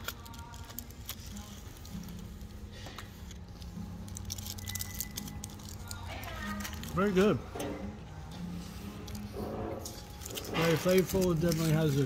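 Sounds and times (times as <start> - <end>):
foil wrapper crinkling: 0.0 - 7.4, 9.0 - 12.0
faint music: 0.0 - 12.0
restaurant chatter: 0.0 - 12.0.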